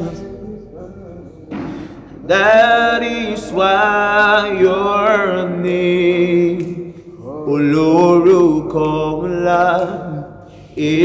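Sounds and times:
man singing worship chorus: 0.0s - 11.0s.

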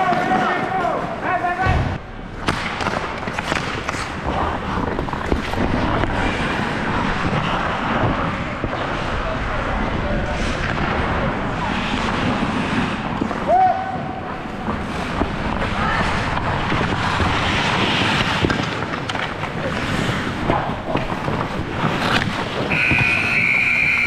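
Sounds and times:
air noise on microphone: 0.8s - 24.0s
skate blades on ice: 2.3s - 24.0s.

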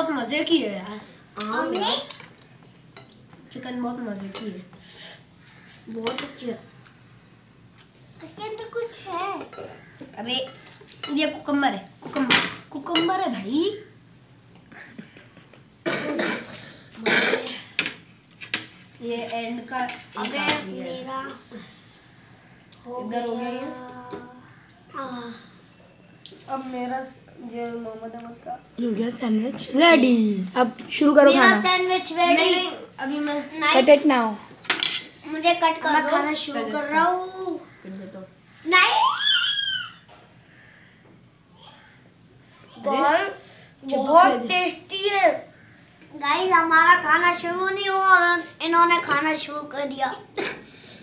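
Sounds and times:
child coughing: 15.8s - 17.7s, 50.4s - 50.8s
high-pitched voice squeal: 38.8s - 40.0s.

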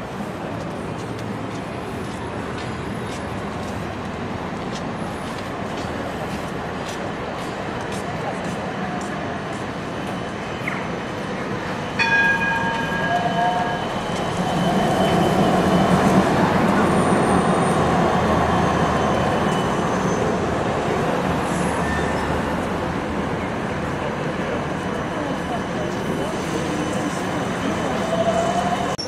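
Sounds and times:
city street noise: 0.0s - 29.0s
tram rumbling past: 0.0s - 29.0s
wheel squeal: 12.8s - 20.6s, 21.4s - 22.5s.

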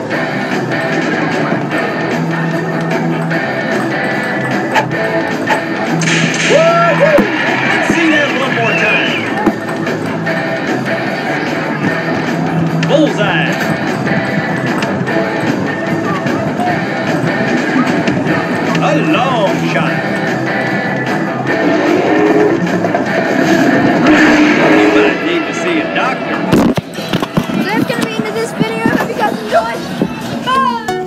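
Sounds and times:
people talking: 7.8s - 9.4s, 12.8s - 13.6s, 18.7s - 20.0s, 24.6s - 26.5s, 27.5s - 31.0s.

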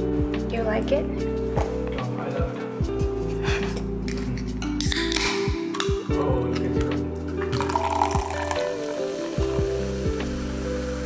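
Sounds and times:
background music with deep bass: 0.0s - 11.0s
cider fizzing in a glass: 7.4s - 11.0s.

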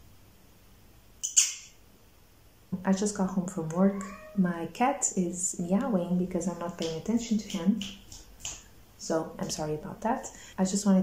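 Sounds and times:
cat meowing: 3.9s - 4.5s.

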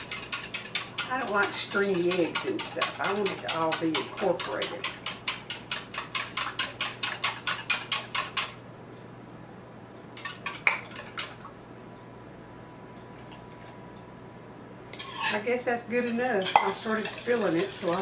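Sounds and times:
wire whisk beating eggs: 0.0s - 8.6s, 16.1s - 18.0s.

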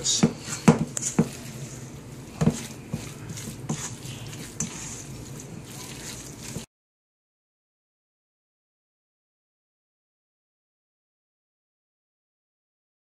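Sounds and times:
spatula squishing wet mixture: 0.0s - 6.7s
spatula knocking on steel bowl: 0.2s - 1.4s, 2.4s - 3.1s.

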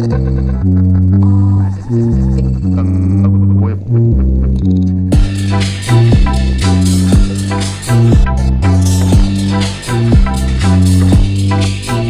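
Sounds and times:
electronic dance music: 5.1s - 12.0s.

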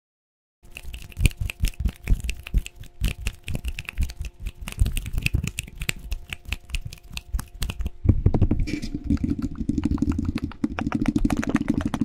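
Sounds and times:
fingers tapping on microphone: 1.2s - 8.0s.

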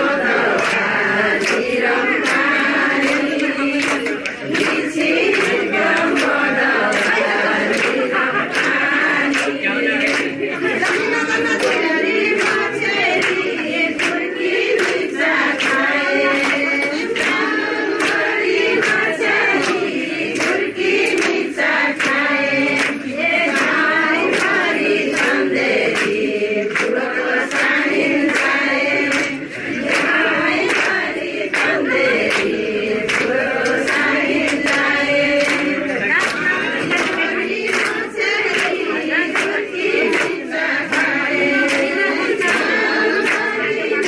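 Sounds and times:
women singing together: 0.0s - 44.0s.

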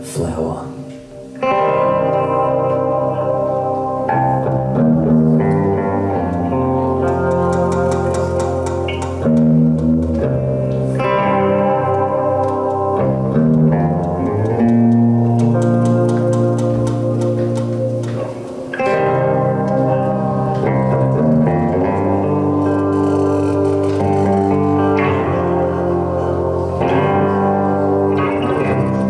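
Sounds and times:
acoustic and electric guitars: 0.0s - 29.0s.

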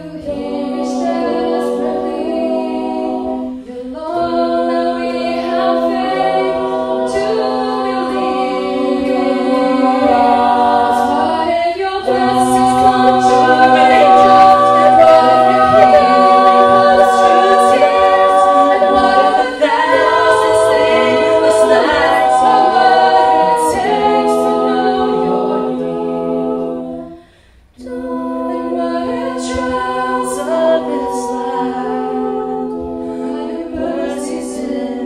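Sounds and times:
a cappella group singing: 0.0s - 35.0s.

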